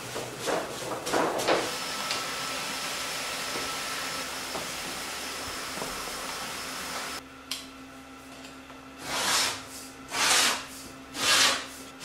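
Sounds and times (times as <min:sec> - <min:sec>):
laminator whirring hiss: 0:00.0 - 0:12.0.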